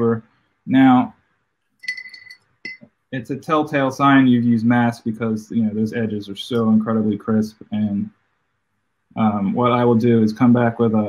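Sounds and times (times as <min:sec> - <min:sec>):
hard object clinking: 0:01.8 - 0:02.9.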